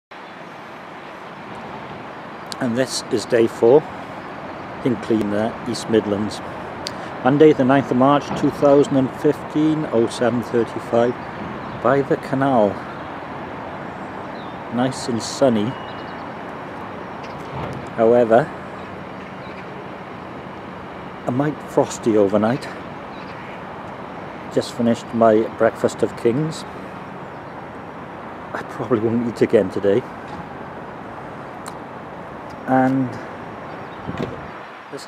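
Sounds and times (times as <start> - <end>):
distant road traffic rumble: 0.1 - 35.0.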